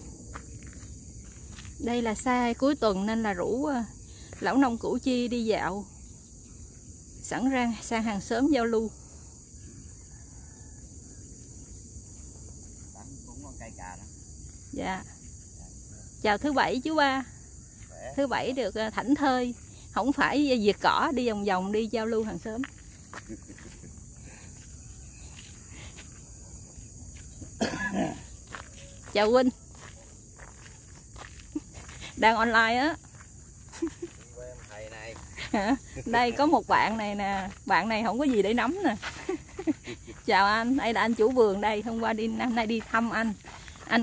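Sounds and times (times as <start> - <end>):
insects chirring: 0.0 - 44.0
faint footsteps on gravel: 0.2 - 1.8, 22.6 - 23.9, 28.3 - 32.2, 33.0 - 35.5, 37.3 - 41.3, 42.6 - 44.0.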